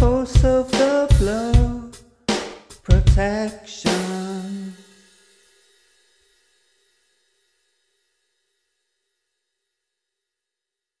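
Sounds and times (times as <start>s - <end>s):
cymbal crash ringing: 3.9s - 8.0s.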